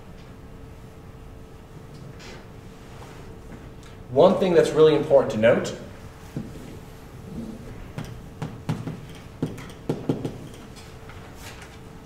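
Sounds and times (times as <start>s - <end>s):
chalk tapping on blackboard: 8.0s - 10.7s.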